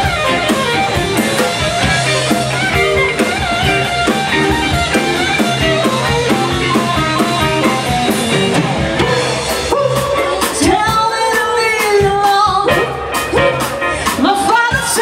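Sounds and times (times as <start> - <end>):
drum kit: 0.0 - 15.0
electric guitar: 0.0 - 15.0.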